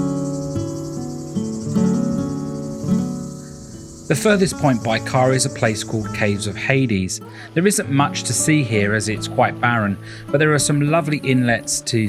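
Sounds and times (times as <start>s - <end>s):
insects droning: 0.0s - 12.0s
plucked acoustic guitar: 0.0s - 12.0s.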